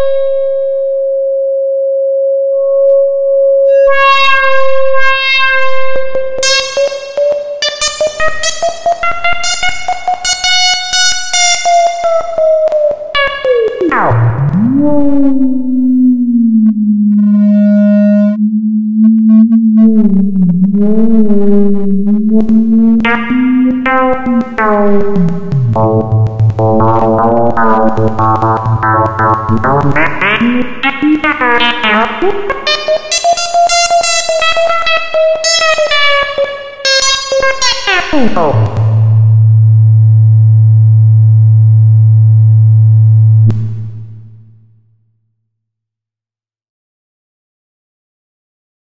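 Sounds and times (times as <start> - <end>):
synthesizer tone gliding down: 0.0 - 12.5, 13.2 - 44.2
scattered clicks: 6.1 - 14.6, 21.7 - 39.2
short higher synth tones: 13.4 - 34.6
low wavering synth drone: 14.4 - 30.7.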